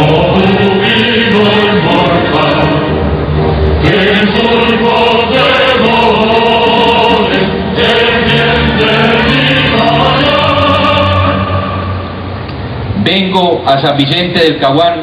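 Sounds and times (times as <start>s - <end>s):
choir singing: 0.0s - 12.4s
music: 0.0s - 12.8s.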